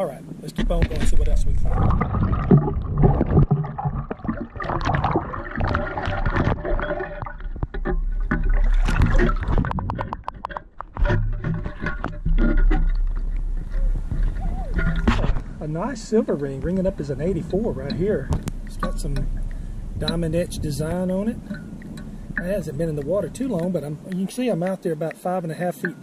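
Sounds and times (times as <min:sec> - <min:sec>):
sand and gravel rattling: 0:00.0 - 0:26.0
metal scoop digging underwater: 0:00.5 - 0:26.0
water sloshing and draining: 0:00.5 - 0:26.0.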